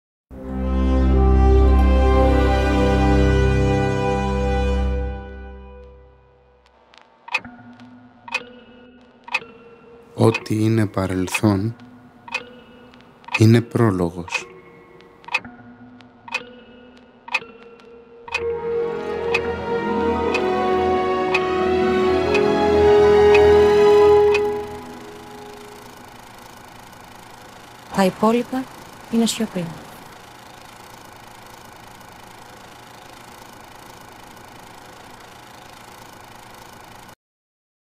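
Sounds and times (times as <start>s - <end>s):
faint steady tones: 5.8s - 37.0s
clock ticking: 7.0s - 18.5s, 19.2s - 19.5s, 20.3s - 20.5s, 21.3s - 21.6s, 22.2s - 34.8s.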